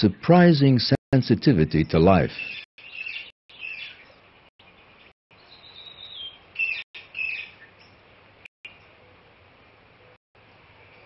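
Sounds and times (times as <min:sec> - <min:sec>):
birds chirping: 0:01.6 - 0:11.0.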